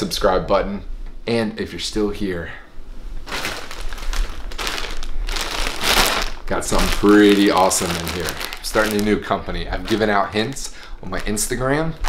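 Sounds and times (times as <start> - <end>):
plastic bag crinkling: 3.2 - 12.0.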